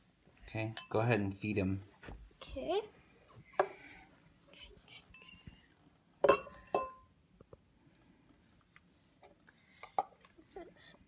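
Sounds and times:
glass clinking: 0.8s - 1.0s, 6.2s - 7.1s.

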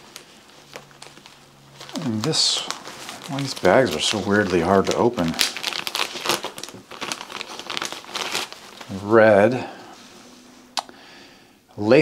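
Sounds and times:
plastic bag crinkling: 0.0s - 10.8s.

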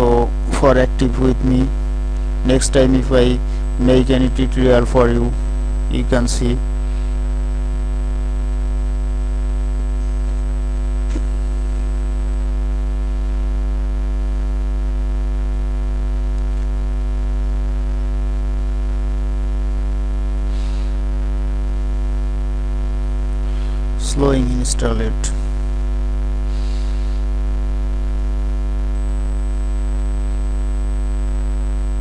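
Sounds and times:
electrical mains hum: 0.0s - 32.0s.

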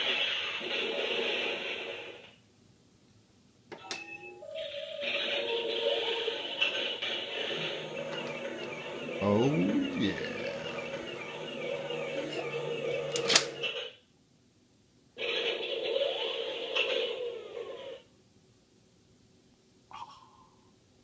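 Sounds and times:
toy electronic sound effects: 7.5s - 13.1s.

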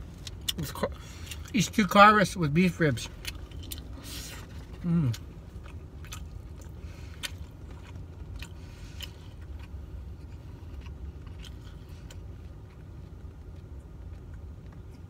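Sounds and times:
low car cabin hum: 0.0s - 15.0s
close-up chewing food: 2.9s - 15.0s.

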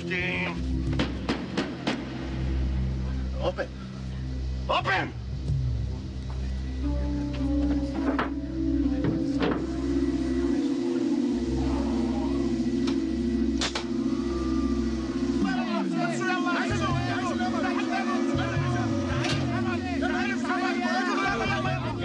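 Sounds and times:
low steady drone: 0.0s - 22.0s.

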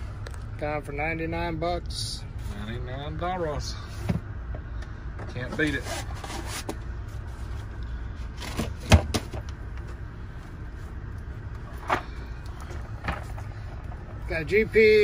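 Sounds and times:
steady low hum: 0.0s - 15.0s
knocks of boxes and drawers: 8.4s - 9.4s
tool cases being handled: 11.7s - 14.2s.

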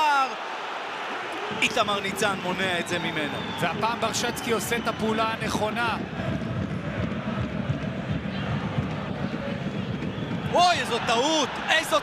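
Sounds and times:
stadium crowd rumble: 1.0s - 12.0s.

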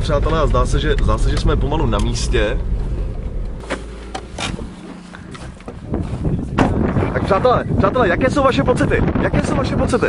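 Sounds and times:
rush of noise: 0.0s - 7.4s
car engine and road noise: 0.0s - 9.2s.

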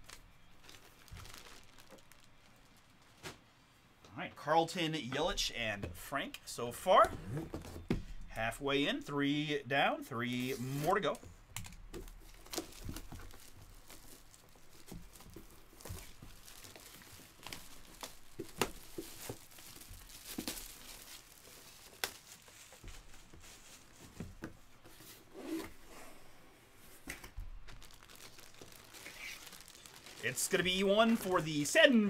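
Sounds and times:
plastic wrapping crinkling and tearing: 0.0s - 3.3s, 10.4s - 24.2s, 27.4s - 32.0s.

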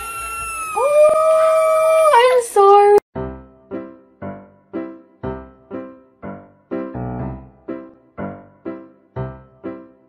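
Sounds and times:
cat yowling: 0.0s - 2.4s
lower held cat cry: 0.0s - 2.4s.

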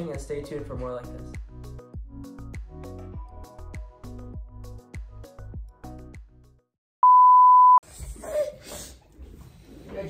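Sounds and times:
electronic beep: 7.0s - 7.8s.

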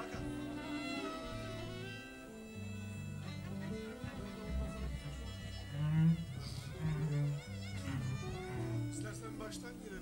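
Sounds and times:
sustained low notes: 0.0s - 9.5s.

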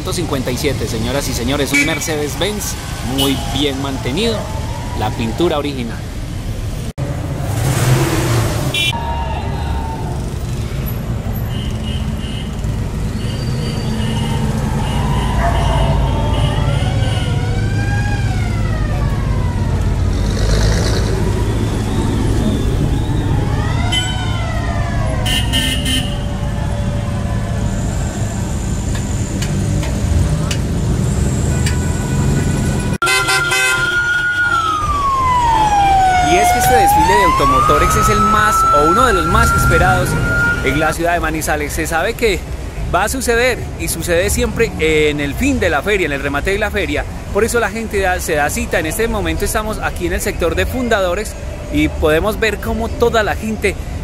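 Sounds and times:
car engines rumbling: 0.0s - 54.0s
siren wailing: 2.9s - 5.8s, 14.0s - 20.2s, 21.1s - 28.6s, 31.8s - 41.0s.

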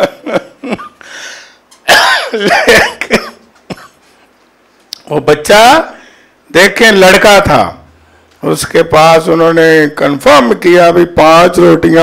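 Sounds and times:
man coughing into a microphone: 1.9s - 4.1s.

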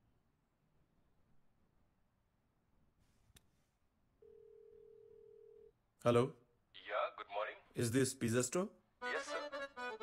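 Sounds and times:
telephone ringing tone: 4.2s - 5.8s.

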